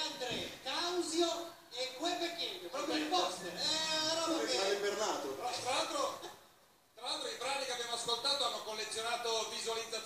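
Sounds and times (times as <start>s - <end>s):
men talking into microphones: 0.0s - 10.0s.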